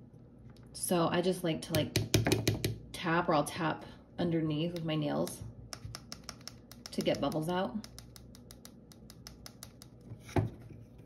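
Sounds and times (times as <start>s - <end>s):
fingernails tapping plastic palette: 5.7s - 10.0s.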